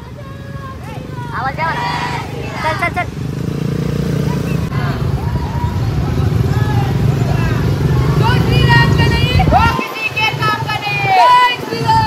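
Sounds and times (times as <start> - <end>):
motorcycle engines rumbling: 0.0 - 12.0
voices calling out: 0.0 - 12.0.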